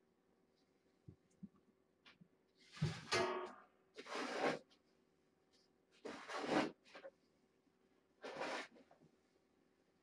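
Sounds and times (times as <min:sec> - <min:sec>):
cat litter scooped and poured: 0:04.0 - 0:04.7, 0:06.0 - 0:07.1, 0:08.2 - 0:09.0.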